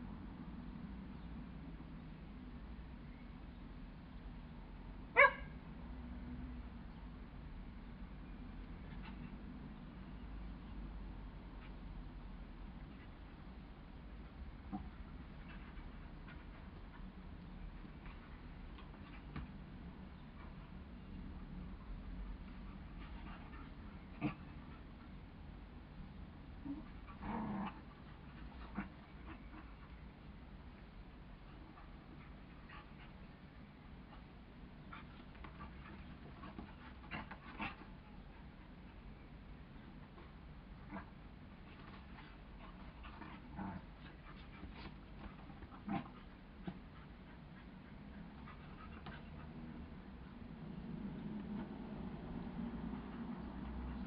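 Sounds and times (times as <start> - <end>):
dogs play-fighting vocalizing: 14.3 - 20.8, 22.3 - 25.2, 26.5 - 54.0.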